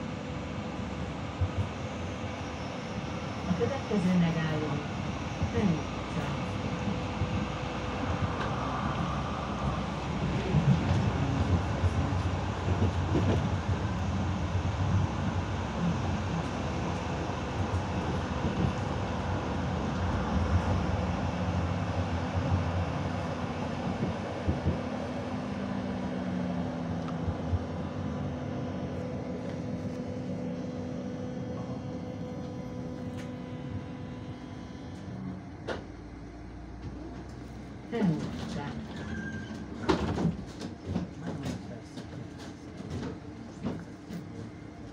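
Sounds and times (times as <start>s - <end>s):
tram wheels rumbling on rails: 0.0s - 44.9s.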